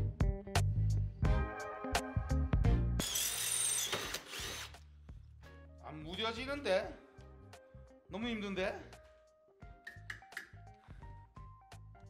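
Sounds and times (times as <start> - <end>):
background music: 0.0 - 12.0
drill whining into steel: 3.0 - 4.8.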